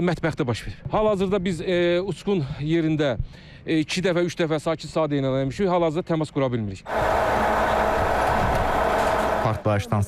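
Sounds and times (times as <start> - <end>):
engine running steadily: 6.9 - 9.6.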